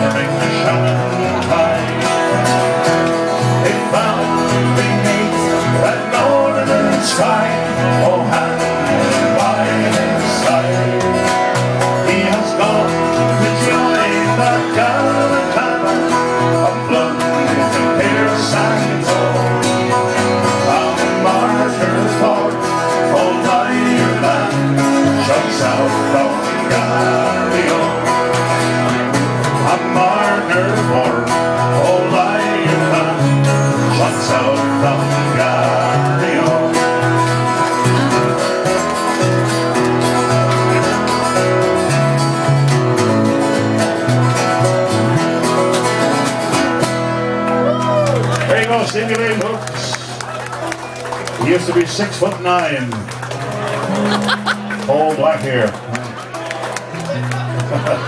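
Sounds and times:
acoustic guitars strumming folk song: 0.0 - 58.0.

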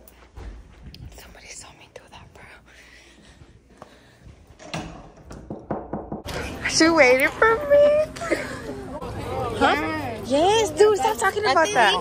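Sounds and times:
person whispering: 1.2 - 2.7.

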